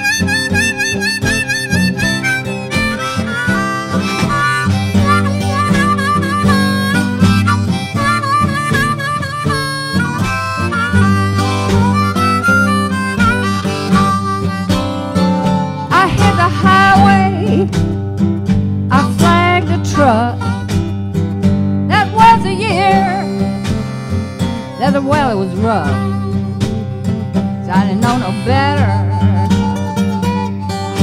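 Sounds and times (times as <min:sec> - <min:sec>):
acoustic guitar: 0:00.0 - 0:31.0
harmonica with bent notes: 0:00.0 - 0:31.0
person singing: 0:15.8 - 0:17.8, 0:18.9 - 0:20.6, 0:21.9 - 0:23.7, 0:24.7 - 0:26.6, 0:27.6 - 0:29.5.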